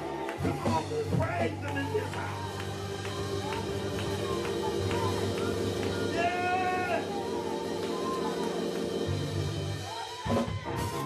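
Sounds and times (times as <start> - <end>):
keyboard chords: 0.0 - 11.0
man shouting: 6.1 - 7.1.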